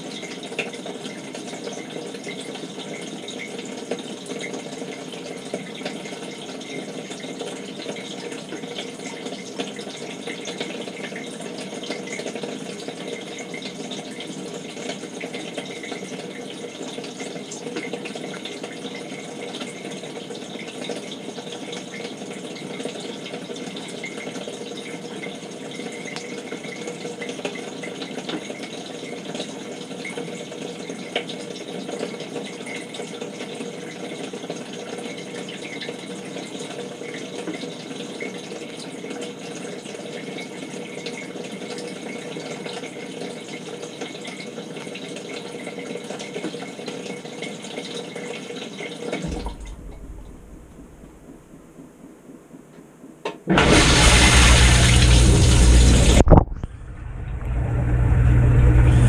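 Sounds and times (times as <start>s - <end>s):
water rushing into dishwasher: 48.8s - 51.8s, 53.3s - 59.0s
faint hum: 53.5s - 59.0s.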